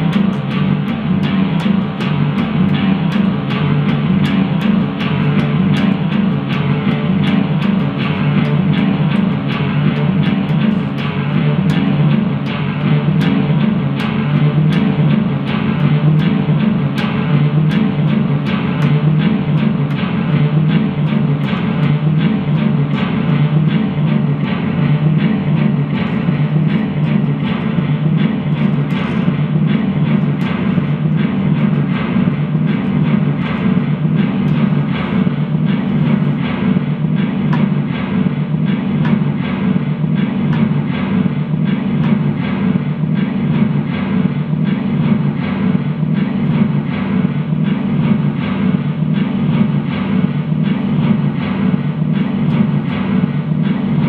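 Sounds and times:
electric guitar drone with pulse: 0.0 - 54.0.

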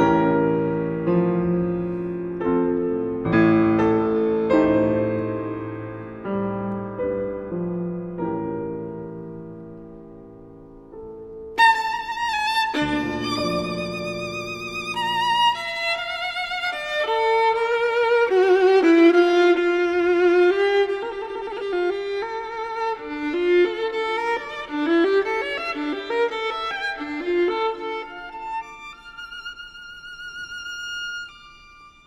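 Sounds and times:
solo violin melody: 0.0 - 10.0, 11.3 - 32.0.

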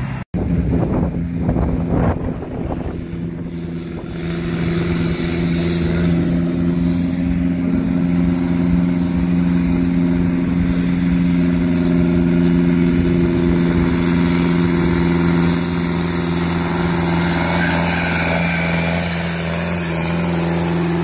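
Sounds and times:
tractor diesel engine at full load: 0.0 - 21.0.

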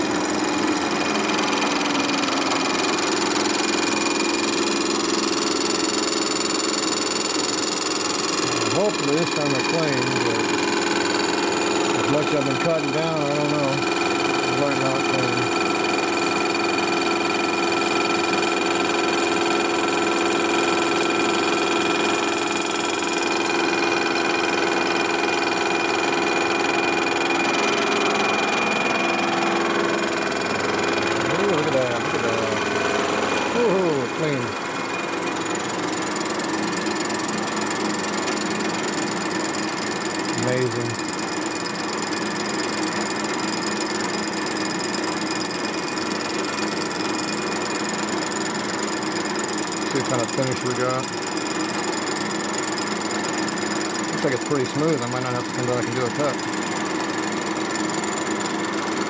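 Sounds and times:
milling machine running: 0.0 - 59.0.

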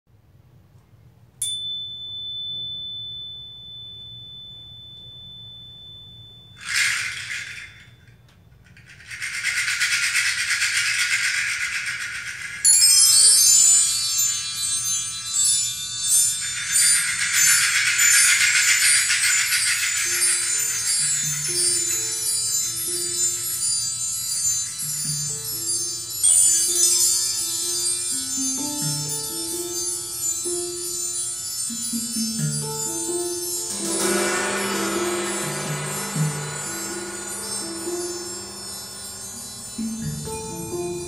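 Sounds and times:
struck bell-like tone: 1.4 - 6.6, 31.7 - 41.0
high chimes: 1.4 - 8.1, 12.6 - 41.0
steady shaker: 6.5 - 41.0.

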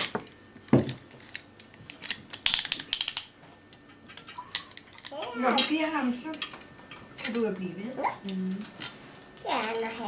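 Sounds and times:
small hard objects clicking: 1.3 - 3.3.

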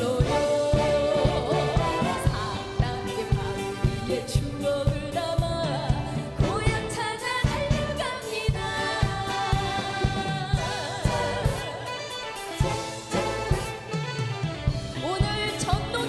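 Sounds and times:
woman singing into a microphone: 0.0 - 12.0, 15.0 - 16.0
band with steady drum beat: 0.0 - 16.0.

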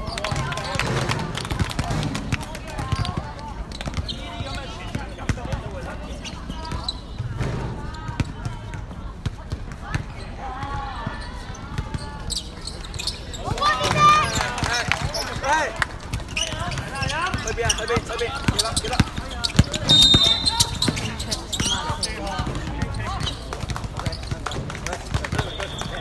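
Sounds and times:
voices calling out: 0.0 - 26.0
basketball bouncing: 6.7 - 10.8, 13.8 - 26.0.

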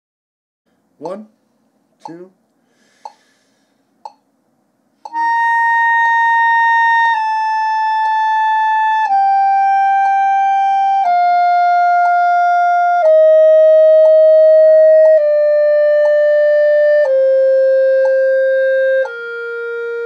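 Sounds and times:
metronome ticking: 1.0 - 1.3, 2.0 - 2.3, 2.9 - 3.3, 4.0 - 4.3, 5.0 - 20.0
clarinet playing a scale: 5.1 - 20.0.

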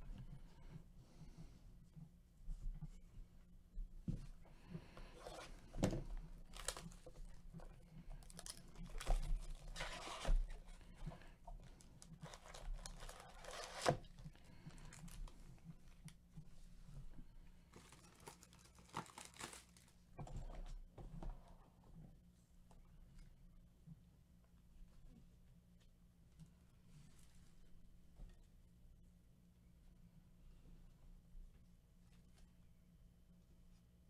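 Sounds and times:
foil packs handled: 6.4 - 7.4, 8.1 - 15.3, 17.7 - 20.0
plastic wrap tearing and crinkling: 6.4 - 7.4, 8.2 - 10.8, 11.7 - 15.3, 17.7 - 20.0.

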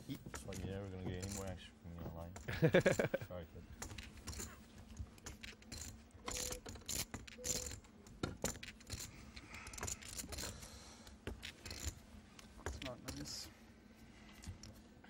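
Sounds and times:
person laughing: 2.5 - 3.4.

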